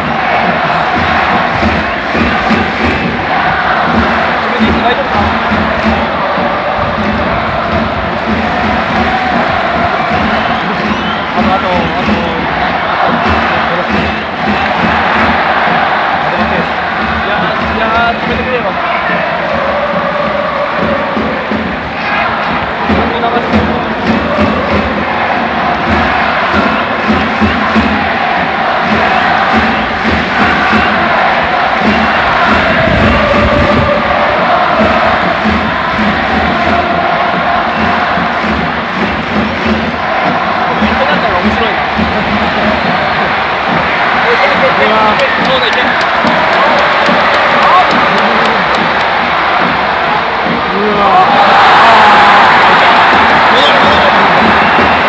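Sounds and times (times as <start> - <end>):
crowd cheering: 0.0 - 55.0
crowd singing chants: 0.0 - 55.0.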